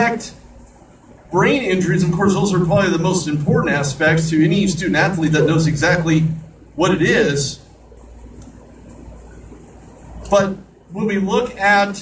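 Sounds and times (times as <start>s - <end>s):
faint background hiss: 0.0s - 12.0s
steady low hum: 0.0s - 12.0s.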